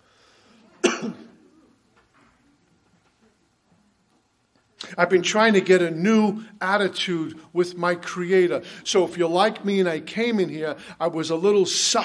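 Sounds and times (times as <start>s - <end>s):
person coughing loudly: 0.8s - 1.5s.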